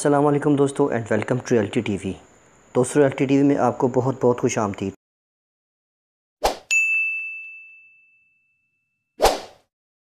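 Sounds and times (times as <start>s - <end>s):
bright bell-like ding: 6.7s - 9.1s
short swoosh: 9.2s - 9.7s.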